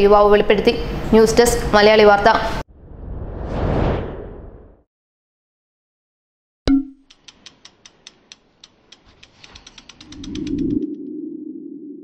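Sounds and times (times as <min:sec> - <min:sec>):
sharp ticks speeding up: 0:07.1 - 0:11.0.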